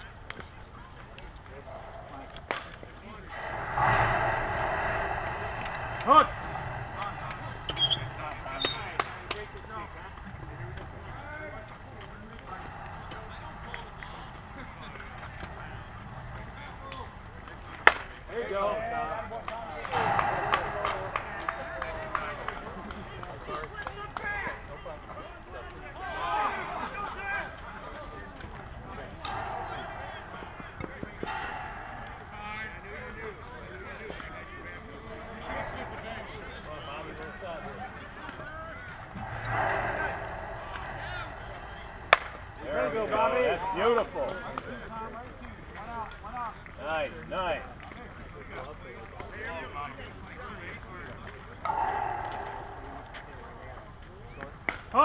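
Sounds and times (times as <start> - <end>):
players calling out: 1.2 - 44.9, 51.4 - 54.6
people shouting: 28.9 - 33.1, 38.4 - 44.0, 51.6 - 53.7
bat hitting softball: 40.7 - 42.6.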